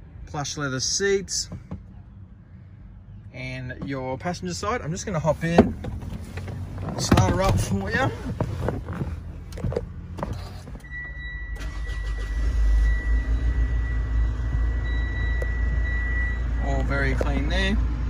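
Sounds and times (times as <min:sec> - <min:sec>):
diesel engine starting and idling: 0:04.0 - 0:18.0.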